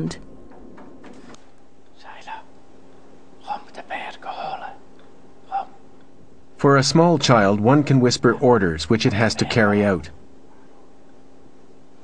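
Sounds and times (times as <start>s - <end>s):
faint steady hum: 0.0s - 12.0s
person whispering: 1.9s - 2.5s, 3.4s - 4.8s, 5.4s - 5.8s, 9.1s - 9.8s.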